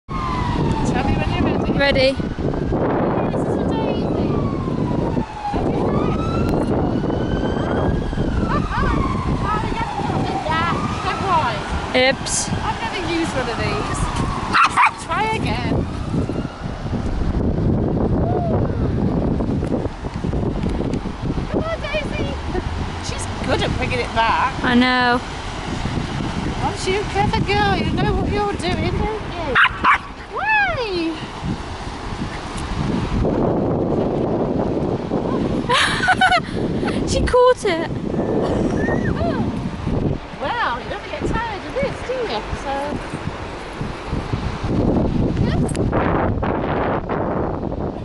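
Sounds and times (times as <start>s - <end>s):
distant siren wailing: 0.1s - 17.2s, 18.0s - 19.4s, 37.9s - 42.7s
wind buffeting microphone: 0.1s - 48.0s
small dog barking: 14.5s - 15.0s, 29.6s - 30.1s.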